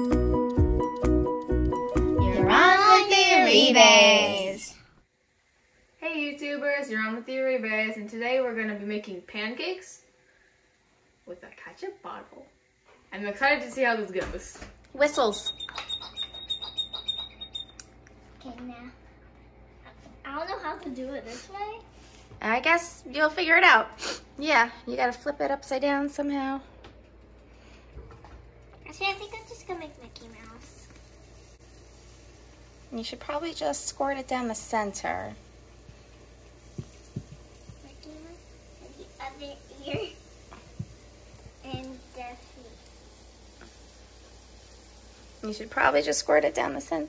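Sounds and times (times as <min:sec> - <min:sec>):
faint sizzling: 0:02.2 - 0:17.0, 0:17.6 - 0:47.0.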